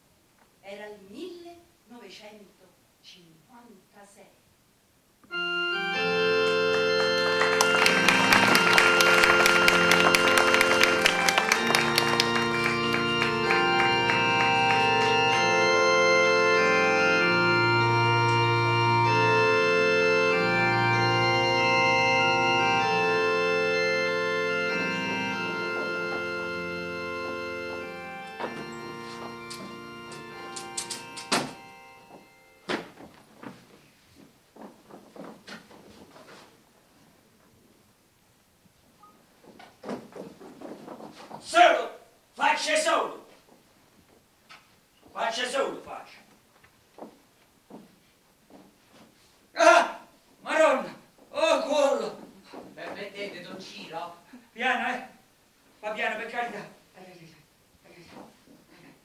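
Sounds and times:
organ playing slow chords: 0:05.3 - 0:32.7
knocks and thumps: 0:32.7 - 0:33.8, 0:39.4 - 0:41.5.

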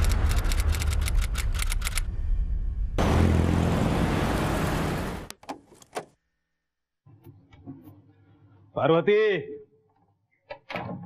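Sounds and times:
busy road traffic: 0:03.0 - 0:06.0.

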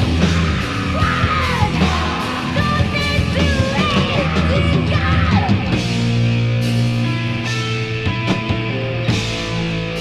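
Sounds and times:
heavy metal music: 0:00.0 - 0:10.0.

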